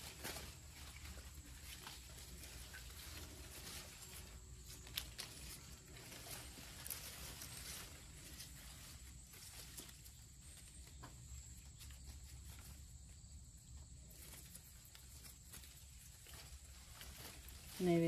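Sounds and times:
rustling of plant leaves: 0:00.0 - 0:18.0.

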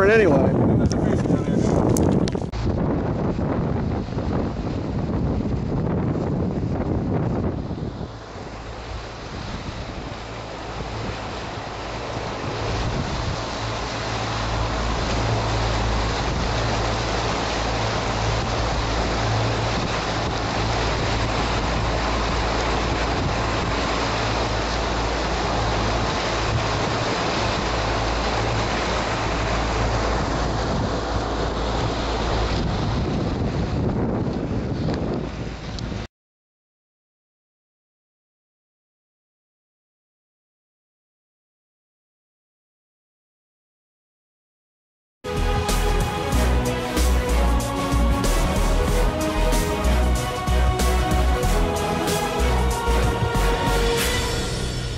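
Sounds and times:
outboard motor drone: 0:00.0 - 0:36.1, 0:45.3 - 0:54.9
water rushing from wake: 0:00.0 - 0:36.1, 0:45.3 - 0:54.9
wind buffeting microphone: 0:00.0 - 0:36.1.

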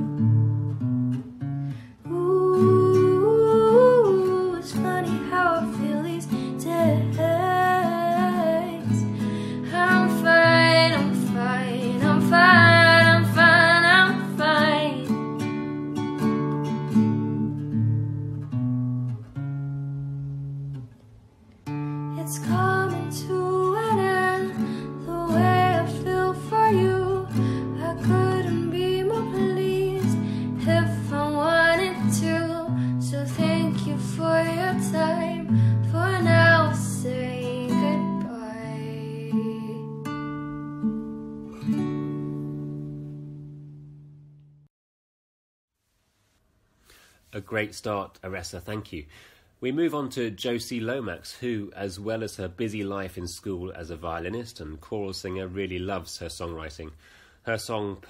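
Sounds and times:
acoustic guitar: 0:00.0 - 0:44.7
woman singing: 0:02.0 - 0:15.3, 0:22.1 - 0:40.0.

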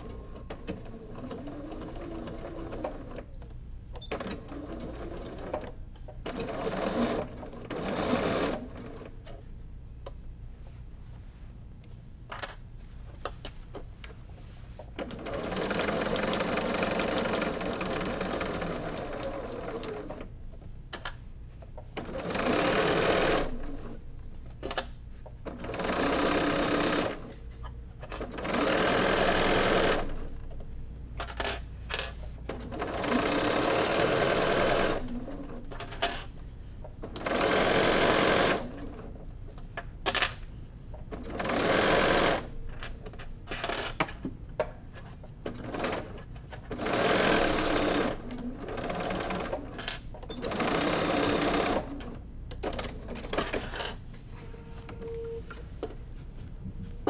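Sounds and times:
sewing machine stitching: 0:04.1 - 0:09.1, 0:15.0 - 0:20.3, 0:22.0 - 0:24.0, 0:25.5 - 0:27.3, 0:28.2 - 0:30.2, 0:32.6 - 0:35.8, 0:37.1 - 0:39.1, 0:41.1 - 0:42.5, 0:45.5 - 0:53.9.

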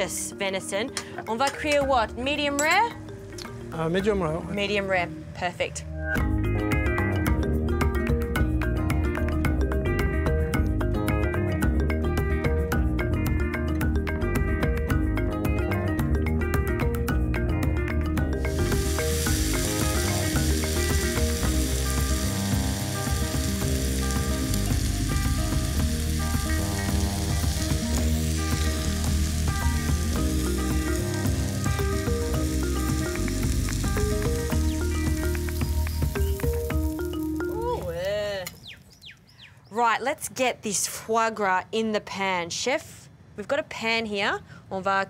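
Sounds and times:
background music: 0:00.0 - 0:38.5
burger patty sizzling in a frying pan: 0:18.4 - 0:37.4.

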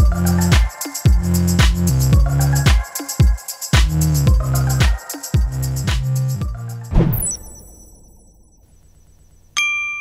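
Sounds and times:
bell-like chime ringing: 0:07.1 - 0:08.8.

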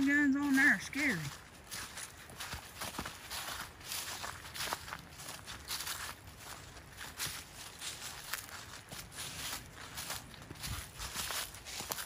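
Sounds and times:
person speaking: 0:00.0 - 0:01.4
footsteps crunching on rocky trail: 0:00.0 - 0:12.0.

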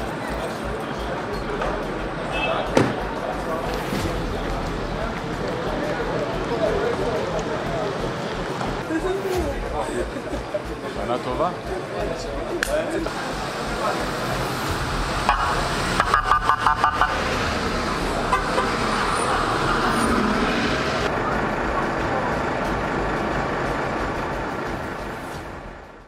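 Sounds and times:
vehicles idling and moving: 0:00.0 - 0:26.0
vehicle horn toots: 0:02.3 - 0:02.8, 0:18.2 - 0:19.3.

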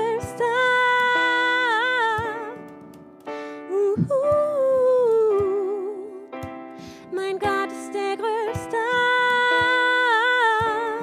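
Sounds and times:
sustained keyboard chords: 0:00.0 - 0:11.0
woman singing with vibrato: 0:03.7 - 0:06.3, 0:07.1 - 0:11.0
kick drum beats: 0:04.0 - 0:04.7.

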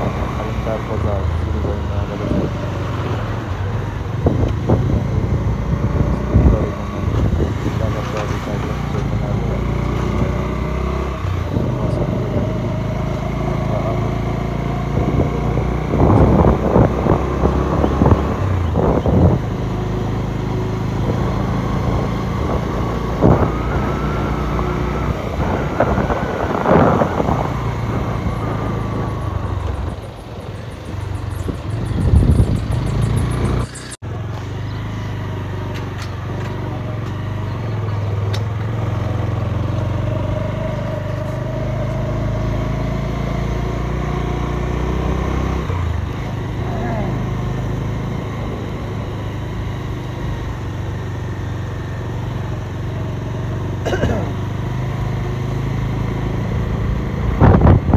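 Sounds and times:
voices: 0:00.0 - 0:42.5, 0:45.6 - 0:49.8
vehicle engine running: 0:00.0 - 0:57.9.

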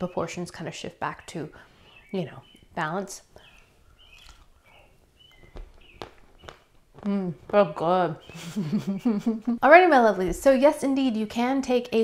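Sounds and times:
faint bird chirps: 0:01.1 - 0:06.6.

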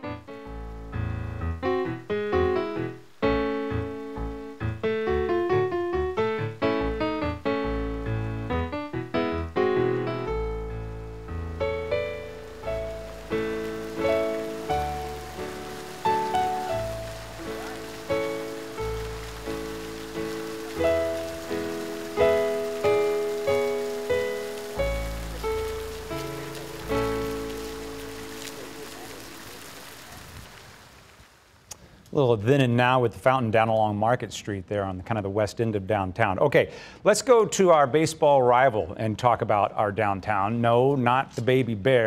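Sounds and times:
slow piano music: 0:00.0 - 0:30.2.

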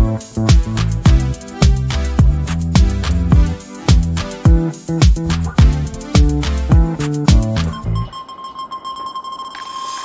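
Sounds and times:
electronic music beat: 0:00.0 - 0:08.2
held high synth tone: 0:07.6 - 0:10.0.

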